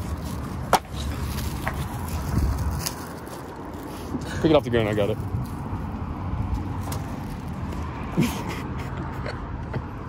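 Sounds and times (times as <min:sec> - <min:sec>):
wind rumble on microphone: 0:00.1 - 0:03.8.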